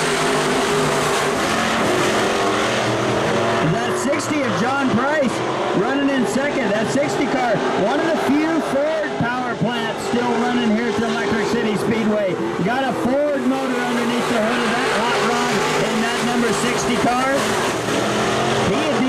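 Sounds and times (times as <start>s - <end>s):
race car engines passing by: 0.0s - 19.0s.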